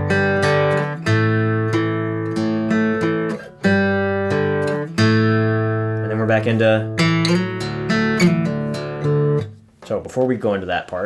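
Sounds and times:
acoustic guitar notes and chord: 0.0 - 9.8.

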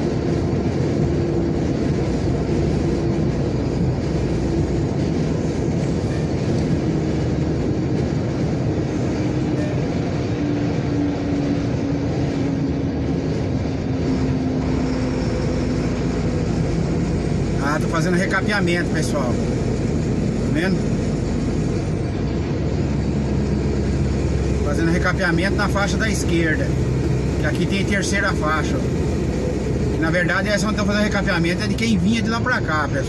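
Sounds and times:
vehicle engine and road drone: 0.0 - 33.0
faint engine tone: 2.2 - 33.0.

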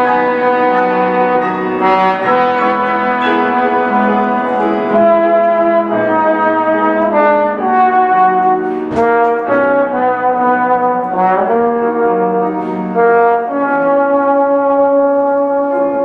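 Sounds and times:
piano accompaniment: 0.0 - 16.0
trombone melody: 0.0 - 16.0.

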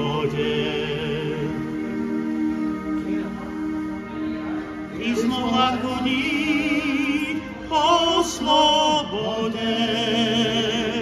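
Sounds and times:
men singing folk song: 0.0 - 2.0, 5.0 - 11.0
instrumental accompaniment: 0.0 - 11.0.

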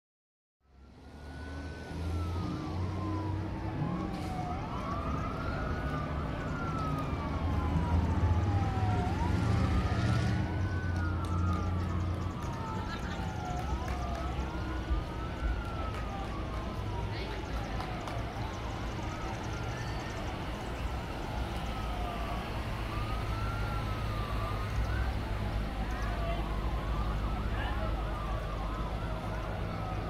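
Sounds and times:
emergency sirens wailing: 0.7 - 30.0
low engine rumble: 2.2 - 30.0.

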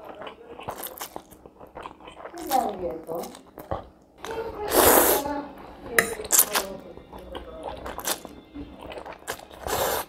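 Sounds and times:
slurping noodles: 4.6 - 5.3, 7.6 - 10.0.

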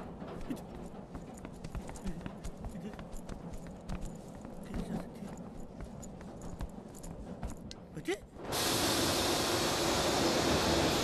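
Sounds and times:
train rumble: 0.0 - 11.0.

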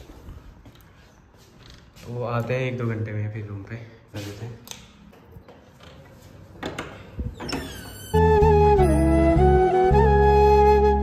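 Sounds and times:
door creaking: 6.6 - 9.4.

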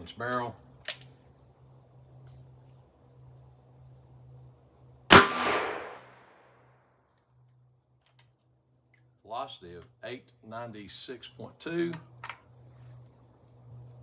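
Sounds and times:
revolver gunshot with echo: 5.1 - 6.4.

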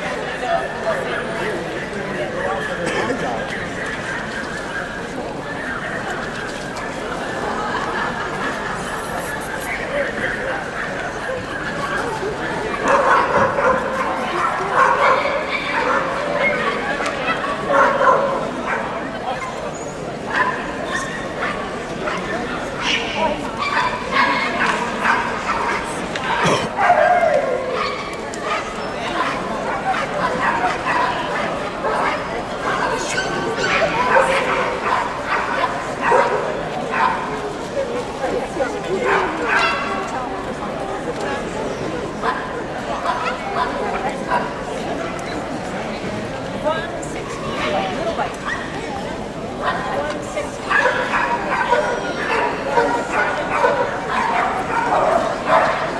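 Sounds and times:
crowd chatter in a hall: 0.0 - 55.9.

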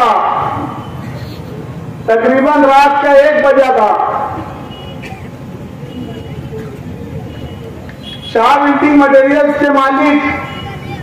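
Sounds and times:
amplified voice echo: 0.0 - 0.6, 2.1 - 4.3, 8.3 - 10.4.

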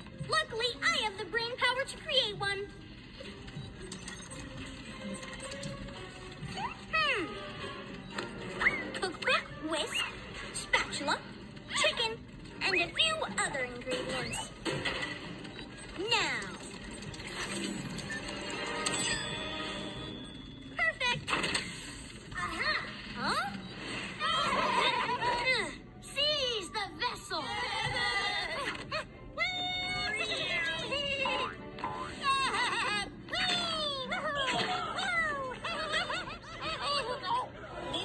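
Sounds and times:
cartoon background music: 0.0 - 38.0
cartoon sound effects: 22.3 - 25.7, 28.5 - 35.6.

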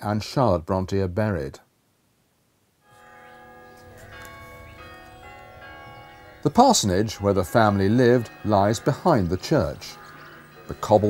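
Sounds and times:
church bells ringing: 2.8 - 11.0.

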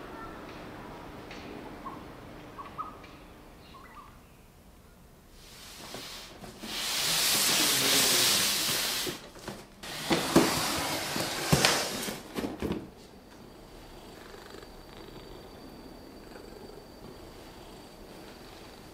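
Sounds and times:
loud scraping hiss: 5.3 - 9.2, 9.8 - 12.3.

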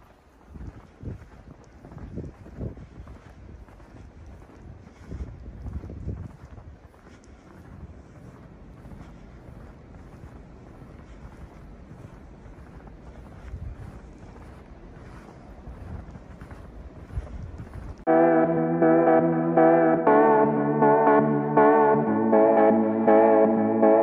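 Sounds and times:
faint crunches: 0.0 - 18.1
wind buffeting microphone: 0.0 - 18.1
music with sustained chords: 18.1 - 24.0.

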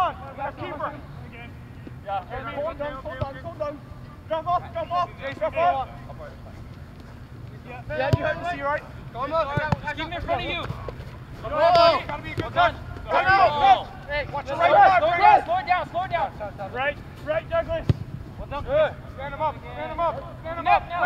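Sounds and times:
men shouting: 11.4 - 16.2.

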